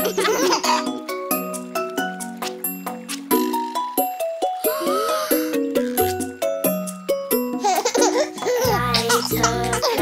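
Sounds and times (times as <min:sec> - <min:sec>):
cartoon child giggling: 0:00.0 - 0:00.9
children's music: 0:00.0 - 0:10.0.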